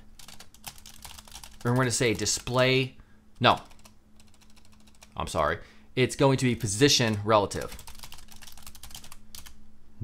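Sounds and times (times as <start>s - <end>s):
keyboard keystrokes: 6.6s - 9.6s.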